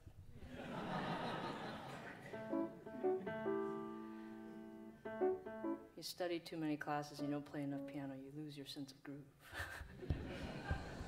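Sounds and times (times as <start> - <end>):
grand piano chords: 2.1 - 6.1.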